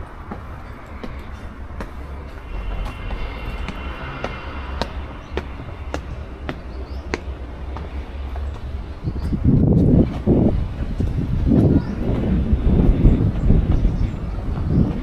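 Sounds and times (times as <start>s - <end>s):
footsteps on stone paving: 0.0s - 15.0s
low rumble: 0.0s - 15.0s.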